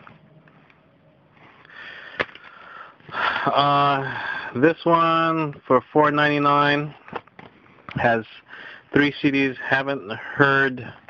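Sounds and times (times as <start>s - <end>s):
faint breathing: 1.3s - 4.6s, 7.5s - 9.0s.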